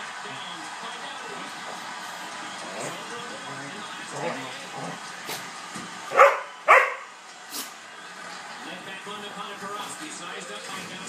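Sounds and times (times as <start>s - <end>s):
dog barking: 6.1s - 7.1s.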